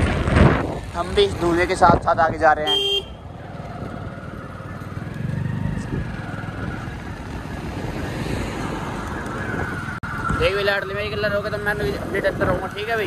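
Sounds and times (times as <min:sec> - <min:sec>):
road noise: 0:00.0 - 0:13.0.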